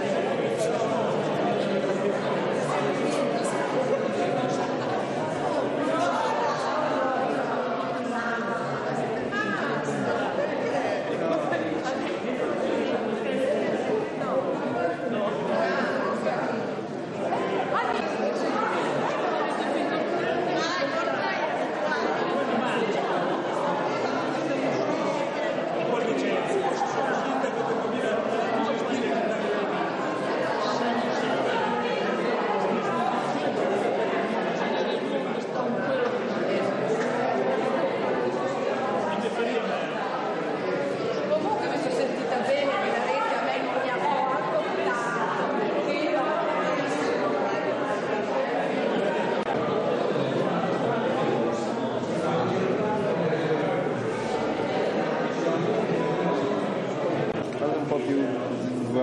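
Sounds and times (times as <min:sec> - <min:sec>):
crowd chatter in a hall: 0:00.0 - 0:59.0.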